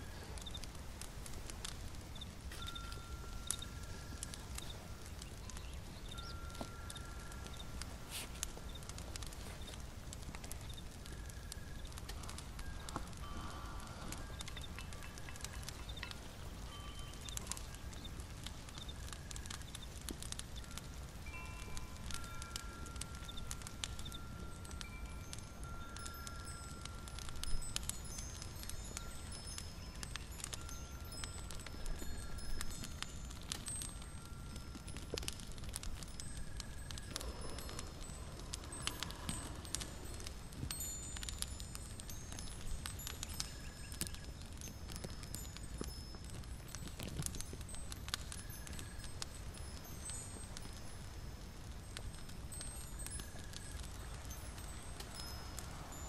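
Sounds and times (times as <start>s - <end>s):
light crackling: 0.0s - 56.0s
wind chimes tinkling: 0.0s - 56.0s.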